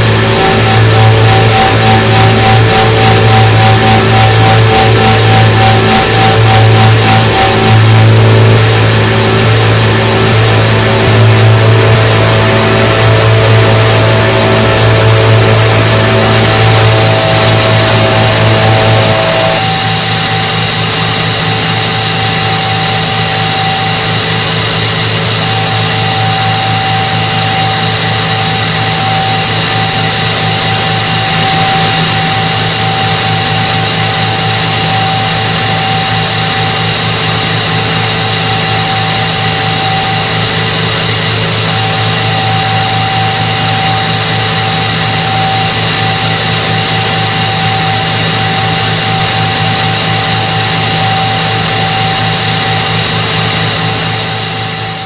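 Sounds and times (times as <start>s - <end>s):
grain vacuum machine drone: 0.0s - 55.0s
steady high whine: 0.0s - 55.0s
strong low hum: 0.0s - 55.0s.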